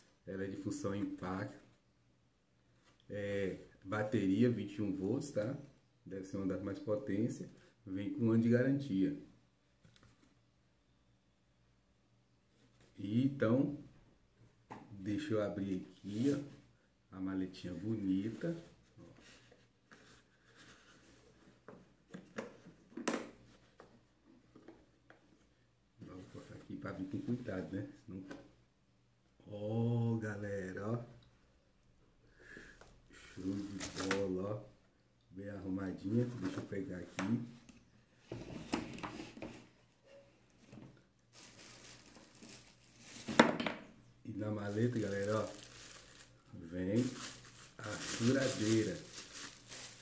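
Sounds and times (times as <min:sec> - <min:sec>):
plastic wrapping crinkling: 0:41.3 - 0:43.4, 0:44.6 - 0:50.0.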